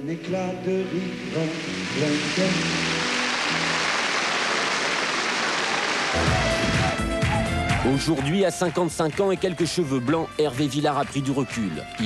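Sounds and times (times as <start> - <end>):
song music: 0.0 - 12.0
concert audience applauding: 1.6 - 12.0.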